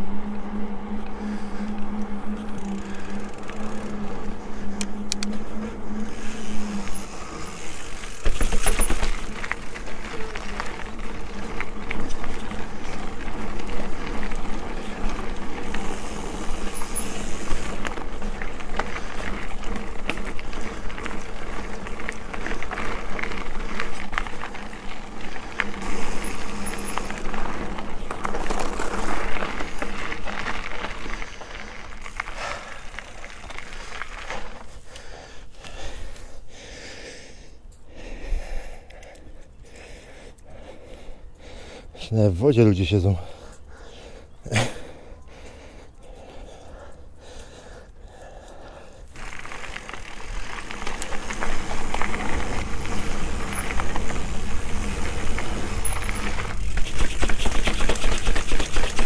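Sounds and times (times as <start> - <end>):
steady hum: 0.0 - 28.0
bike tyres on gravel: 0.0 - 37.4, 38.0 - 59.0
bike tyres rolling on tarmac: 0.0 - 59.0
bike clicks and rattles: 0.9 - 36.4, 38.6 - 41.2, 46.1 - 59.0.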